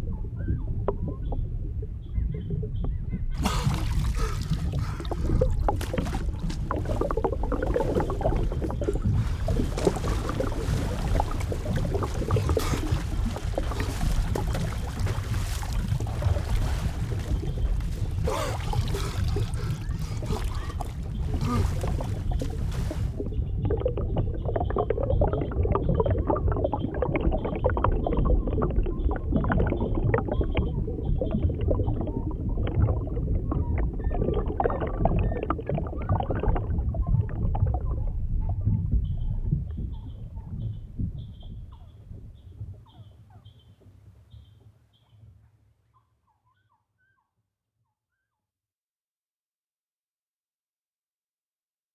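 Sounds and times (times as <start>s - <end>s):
low rumbling noise: 0.0s - 42.8s.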